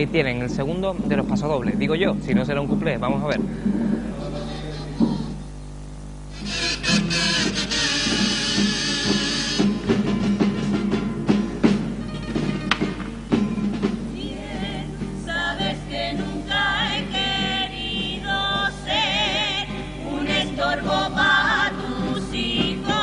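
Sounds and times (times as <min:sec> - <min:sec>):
strummed guitars: 0:06.3 - 0:23.0
choir singing: 0:14.2 - 0:23.0.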